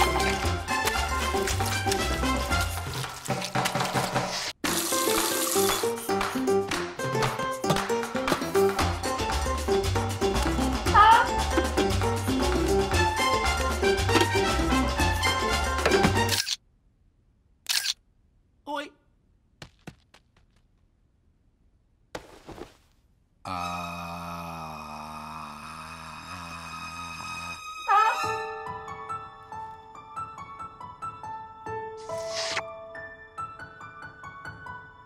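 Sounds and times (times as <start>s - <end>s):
cartoon music with bass beat: 5.8s - 16.3s.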